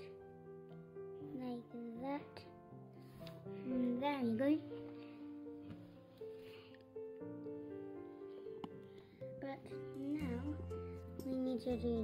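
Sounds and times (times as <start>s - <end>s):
quiet plucked-string music: 8.3s - 12.0s.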